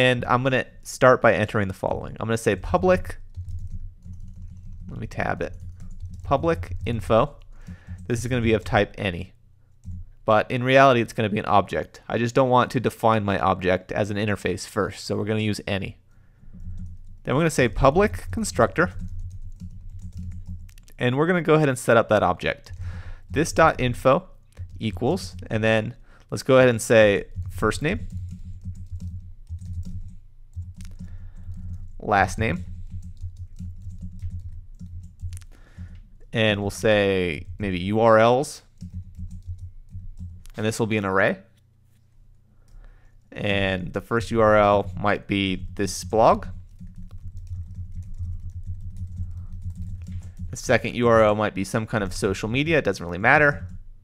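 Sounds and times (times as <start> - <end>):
steady low hum: 0.0 - 54.0
computer keyboard typing: 2.6 - 8.9, 9.8 - 10.1, 16.4 - 21.0, 22.1 - 25.9, 26.6 - 37.9, 38.7 - 40.6, 44.2 - 52.6, 53.2 - 53.8.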